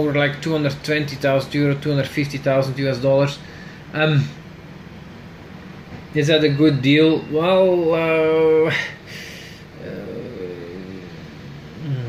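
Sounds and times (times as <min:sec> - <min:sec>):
man murmuring: 0:09.8 - 0:12.0.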